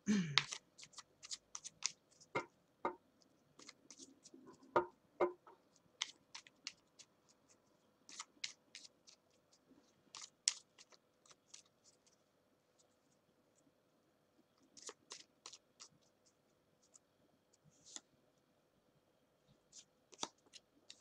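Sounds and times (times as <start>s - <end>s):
cards being shuffled by hand: 0.4s - 2.3s, 6.0s - 12.2s, 14.7s - 16.1s, 19.7s - 21.0s.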